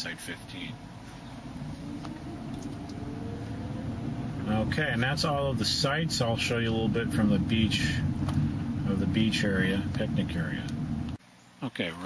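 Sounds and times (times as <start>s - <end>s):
vehicle engine running: 0.4s - 11.2s.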